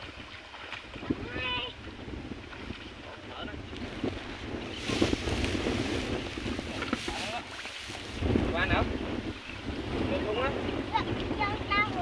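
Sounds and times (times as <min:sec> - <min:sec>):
wading through water: 0:00.0 - 0:12.0
wind buffeting microphone: 0:00.0 - 0:12.0
rice stalks rustling: 0:04.7 - 0:08.2.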